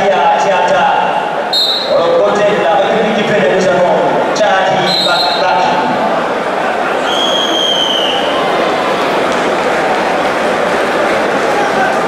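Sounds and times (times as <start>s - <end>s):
chatter of voices: 1.0s - 7.5s, 8.1s - 12.0s
referee's whistle blast: 1.5s - 2.0s, 4.8s - 5.5s, 7.1s - 8.3s.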